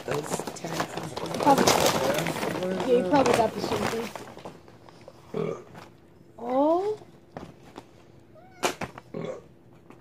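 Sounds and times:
kitten chirping meow: 8.4 - 8.8.

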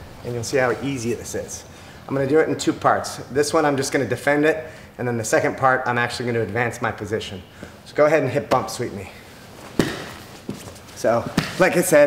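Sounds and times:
fabric rustling: 9.4 - 11.8
body thumping on mat: 9.6 - 11.6.

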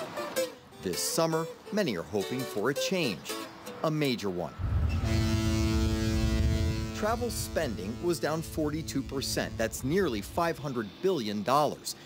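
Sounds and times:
ship's horn blast: 4.6 - 10.4
deep rumble: 4.6 - 10.6.

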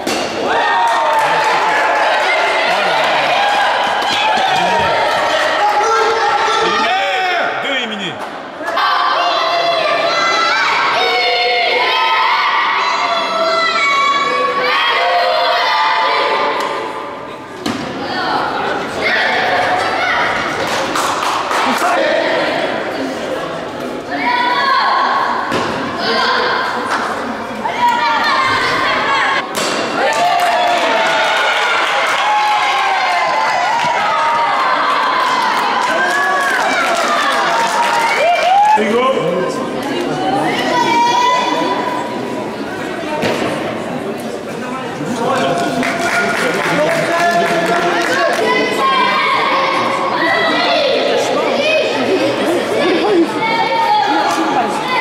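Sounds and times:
children shouting and cheering: 0.4 - 7.5, 8.6 - 17.0, 18.0 - 20.8, 24.1 - 26.8, 27.6 - 29.4, 30.0 - 38.9, 40.0 - 42.0, 48.0 - 55.0.

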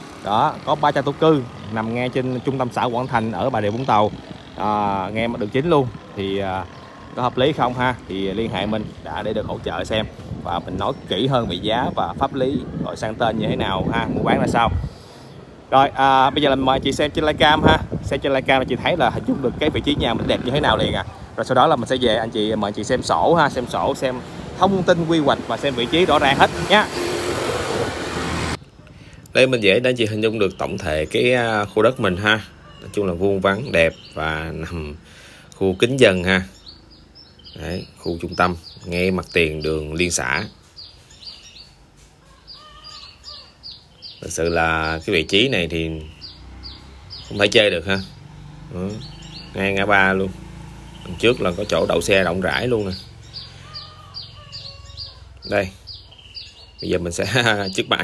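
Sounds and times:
vehicle passing by: 0.0 - 28.7, 31.9 - 56.8
small birds chirping: 0.0 - 58.0.

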